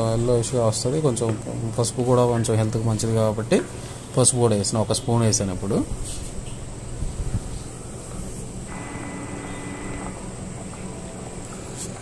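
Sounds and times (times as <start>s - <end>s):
thin high whine: 7.5s - 12.0s.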